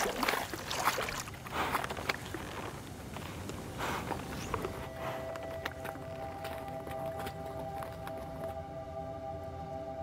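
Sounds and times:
hooves splashing in water: 0:00.0 - 0:08.5.

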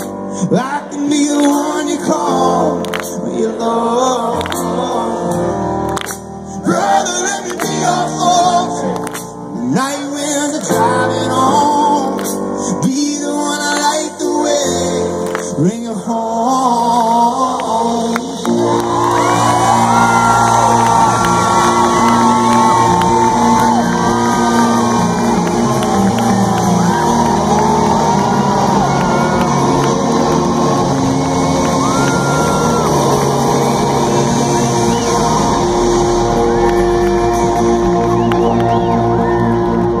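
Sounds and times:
crowd shouting and cheering: 0:00.0 - 0:11.8, 0:17.6 - 0:40.0
rock band playing live: 0:18.3 - 0:40.0.

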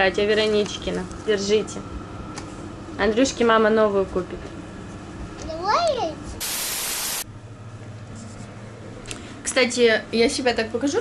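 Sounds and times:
burst of white noise: 0:06.4 - 0:07.3.

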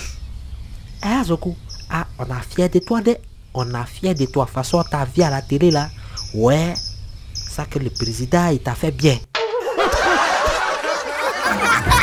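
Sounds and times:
group of people laughing: 0:09.4 - 0:12.0.

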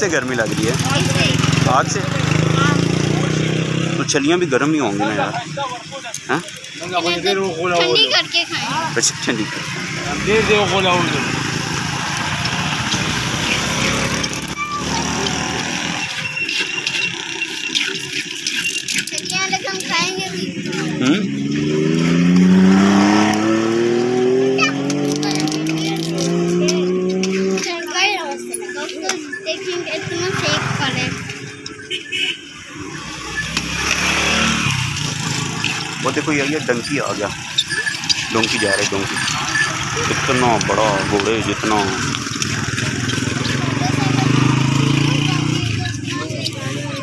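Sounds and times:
vehicle engine running: 0:00.0 - 0:47.0
background voices: 0:34.8 - 0:47.0.

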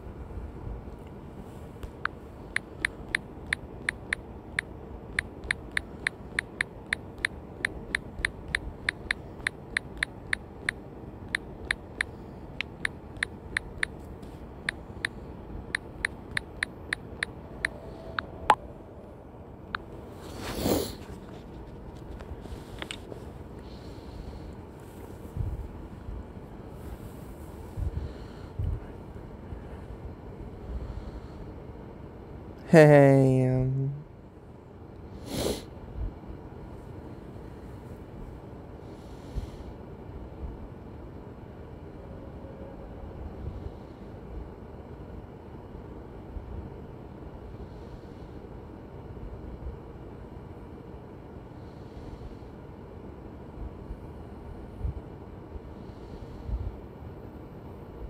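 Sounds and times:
phone keyboard key clicks: 0:05.2 - 0:14.0.

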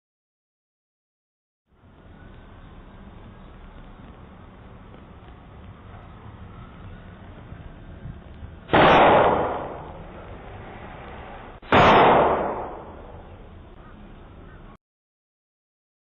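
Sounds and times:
gunshots with long echo: 0:08.7 - 0:13.4.

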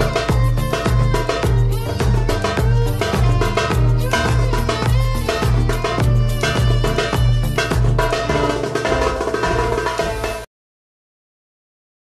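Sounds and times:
dance pop backing track: 0:00.0 - 0:10.3
hand drum strokes: 0:00.0 - 0:10.5.

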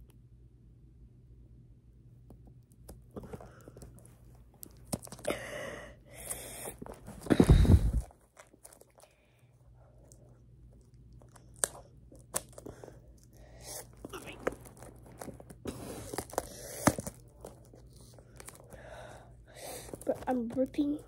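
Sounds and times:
packaging crinkling and tearing: 0:03.9 - 0:05.3, 0:06.2 - 0:09.2, 0:10.0 - 0:21.0.

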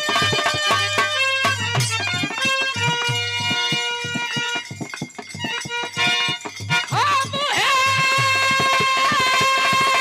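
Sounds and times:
hand drum strikes: 0:00.0 - 0:10.0
harmonium held tones: 0:00.0 - 0:10.0.

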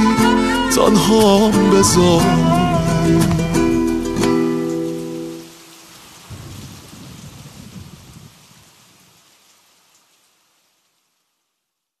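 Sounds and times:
steady rain: 0:00.0 - 0:12.0
low thunder rumble: 0:06.3 - 0:09.2.

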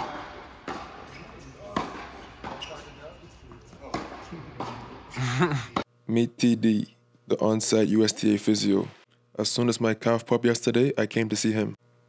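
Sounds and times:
tennis ball hit by racket: 0:00.0 - 0:02.6, 0:03.9 - 0:04.9
tennis ball bouncing: 0:00.0 - 0:05.0.

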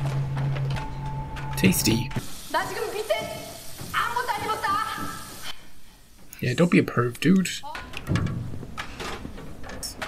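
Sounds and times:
steady hiss: 0:01.6 - 0:07.3.

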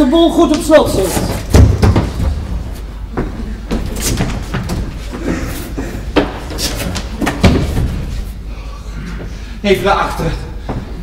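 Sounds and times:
doors and shutters knocking shut: 0:01.1 - 0:02.5, 0:06.1 - 0:08.1.

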